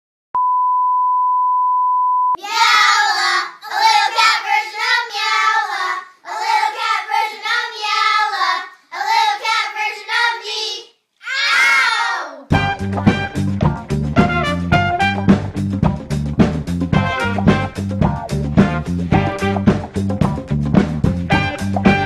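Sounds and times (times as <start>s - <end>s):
steady pure beep: 0.4s - 2.4s.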